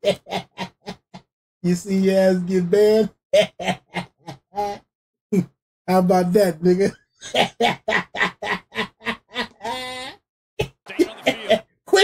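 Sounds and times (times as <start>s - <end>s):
man laughing hard: 0.0s - 1.2s, 3.4s - 4.8s, 7.2s - 11.7s.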